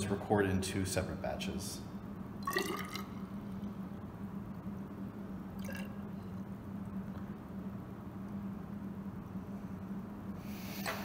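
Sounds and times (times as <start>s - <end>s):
low room hum: 0.0s - 11.0s
water pouring into glass: 2.4s - 3.2s, 5.6s - 6.0s.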